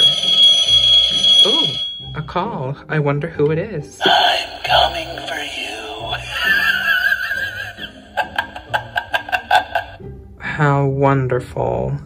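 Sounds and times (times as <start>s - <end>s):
wavering eerie tone: 0.0s - 2.2s, 4.0s - 7.6s.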